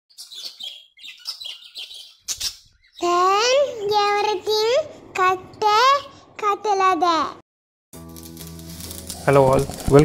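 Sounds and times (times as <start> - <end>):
birds chirping: 0.1 - 4.7.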